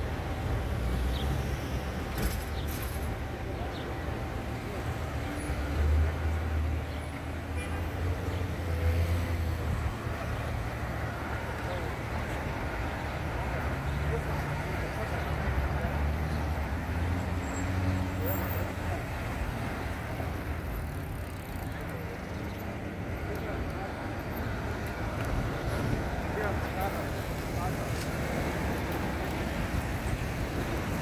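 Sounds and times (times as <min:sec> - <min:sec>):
city traffic noise: 0:00.0 - 0:31.0.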